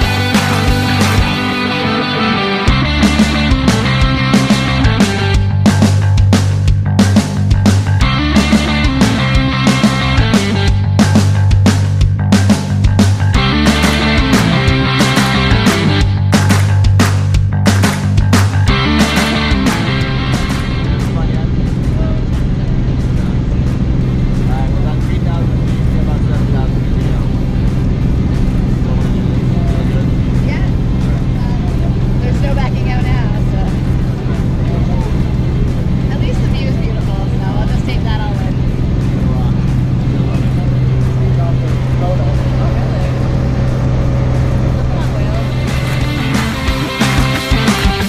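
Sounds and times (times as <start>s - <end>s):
propeller plane engine droning: 0.0s - 48.0s
faint voices: 20.6s - 46.3s.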